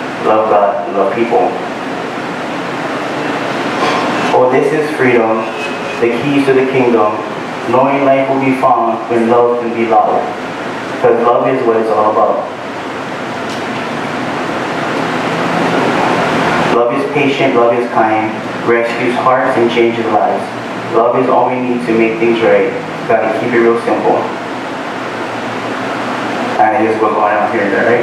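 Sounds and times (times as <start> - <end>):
steady rushing noise: 0.0 - 28.0.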